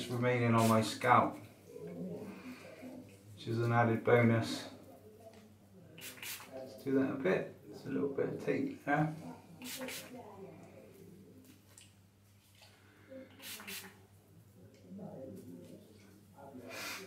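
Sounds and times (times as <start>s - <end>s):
spray bottle hisses: 6.0s - 6.5s, 9.6s - 10.1s, 13.4s - 14.0s.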